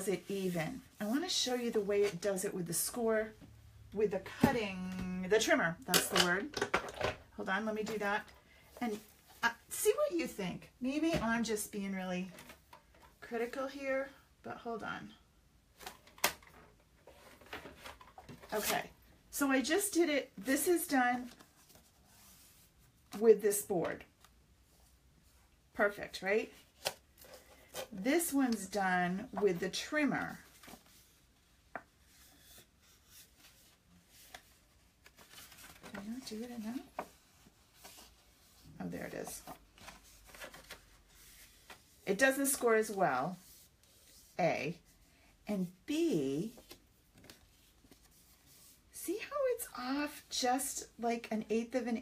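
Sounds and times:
faint handling noises: 26.5 - 44.3.

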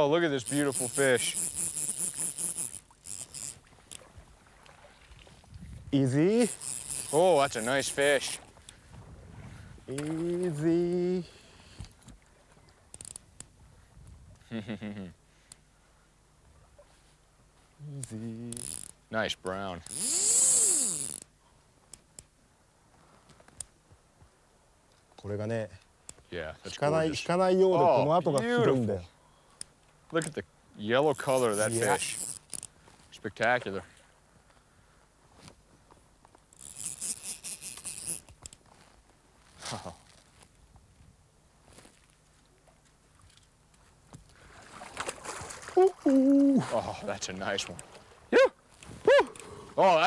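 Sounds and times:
fly reel ratchet buzzing: 0.4 - 3.6, 6.4 - 8.0, 18.6 - 18.9, 19.9 - 21.2, 31.2 - 32.7, 36.6 - 38.3
fish splashing at water surface: 44.4 - 47.0.

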